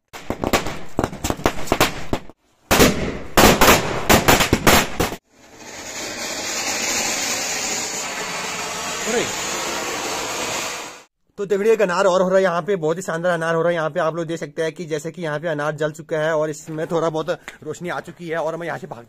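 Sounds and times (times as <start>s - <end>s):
firecrackers cracking: 0.1s - 11.1s
ground fountain firework hissing: 5.2s - 11.1s.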